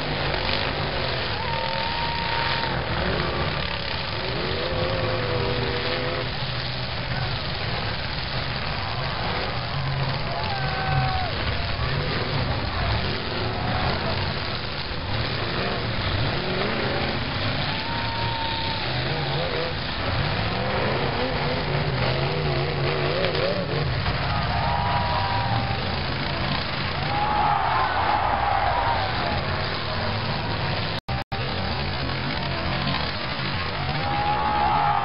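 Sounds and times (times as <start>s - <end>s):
car engines revving: 0.0s - 35.0s
tyres spinning on dirt: 0.0s - 35.0s.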